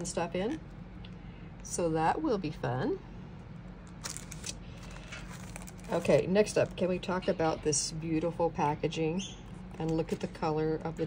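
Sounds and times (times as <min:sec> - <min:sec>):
steady low hum: 0:00.0 - 0:11.0
plastic packaging crinkling: 0:03.9 - 0:06.8.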